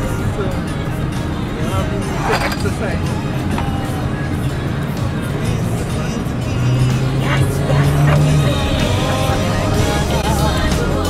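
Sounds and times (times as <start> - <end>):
music playing in car: 0.0 - 11.0
road and engine rumble: 0.0 - 11.0.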